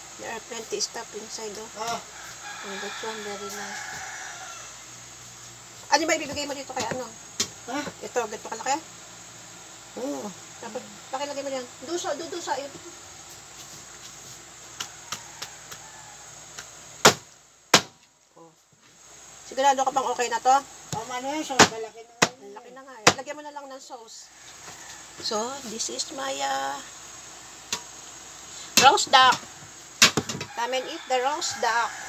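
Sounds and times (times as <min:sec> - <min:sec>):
steady low hiss: 0:00.0 - 0:32.0.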